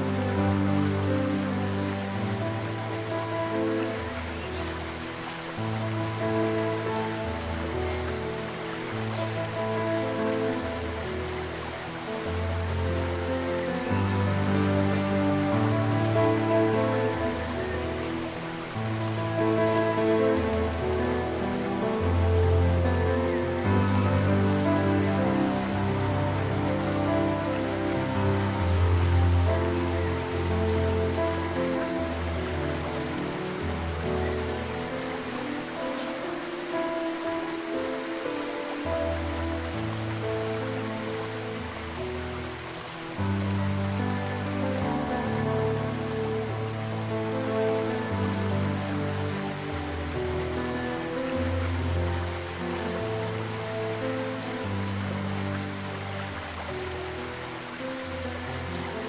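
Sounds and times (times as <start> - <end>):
slow piano music: 0.0 - 59.0
waterfall rushing: 0.0 - 59.0.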